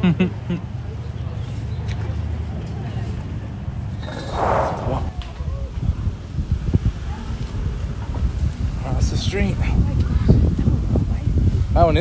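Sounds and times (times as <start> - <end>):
indistinct voices: 4.0 - 5.4
rush of noise: 4.0 - 5.4
wind on microphone: 4.0 - 12.0.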